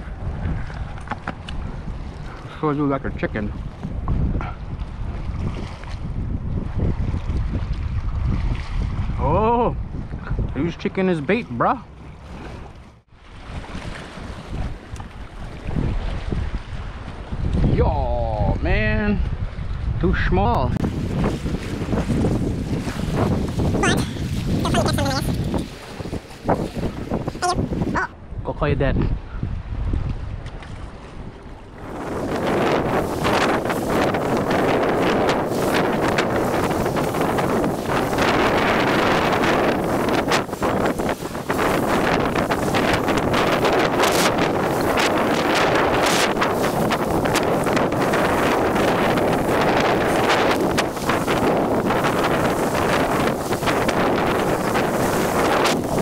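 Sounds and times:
wind gusting across microphone: 0.0 - 56.0.

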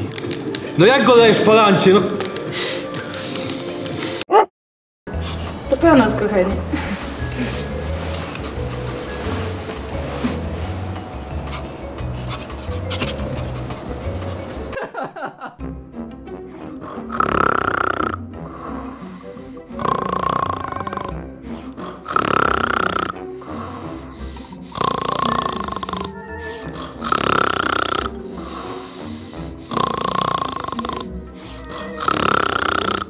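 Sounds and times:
background music: 0.0 - 4.3, 5.1 - 33.0
man snoring loudly: 16.9 - 21.2, 21.8 - 33.0.

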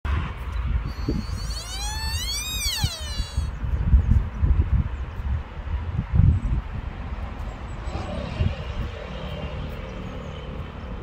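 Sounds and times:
wind rumble on microphone: 0.1 - 11.0
deer whistling call: 0.9 - 3.6.

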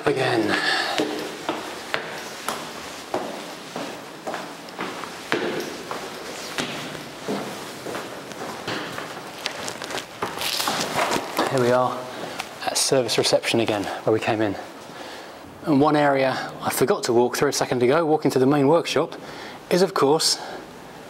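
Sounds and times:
footsteps on stairs and floors: 0.0 - 12.5.

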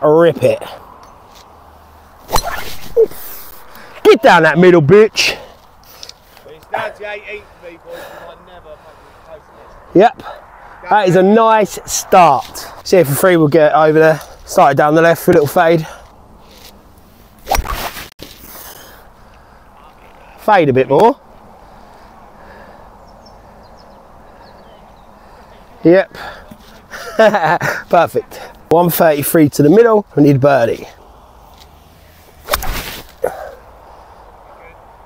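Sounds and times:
faint outdoor background: 0.0 - 35.0
short rush of noise: 2.2 - 4.5
golf club striking ball: 2.3 - 4.0.

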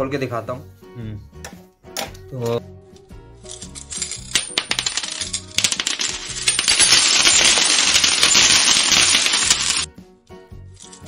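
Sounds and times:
background music: 0.0 - 11.0
coins clinking onto hard surface: 3.5 - 9.9, 10.8 - 11.0.

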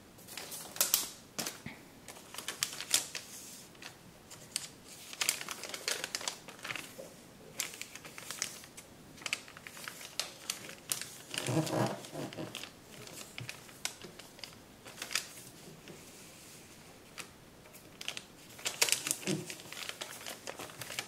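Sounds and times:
paper crackling and folding: 0.2 - 21.0.

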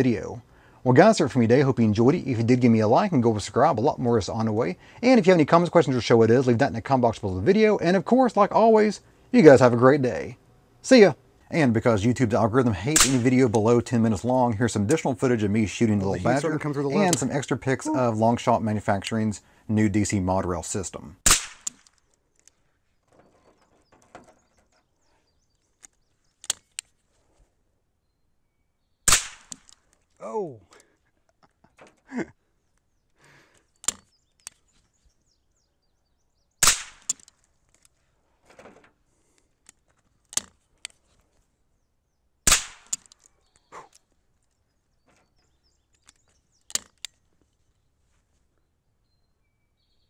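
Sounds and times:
rifle action metallic crack: 12.9 - 13.6, 21.2 - 22.1, 29.1 - 29.9, 36.6 - 37.9, 42.4 - 43.3, 46.0 - 47.2
rifle shot: 13.0 - 13.3, 21.2 - 21.8, 29.1 - 29.7, 36.6 - 37.2, 42.5 - 43.0
light handling clicks: 25.6 - 26.9, 33.5 - 34.9, 37.0 - 38.0, 39.3 - 41.2, 42.8 - 44.6, 45.2 - 47.6.

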